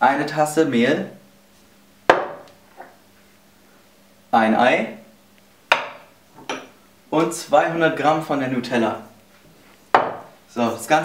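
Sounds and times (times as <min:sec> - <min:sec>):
cup knocking on hard surface: 0:02.1 - 0:02.4, 0:09.9 - 0:10.3.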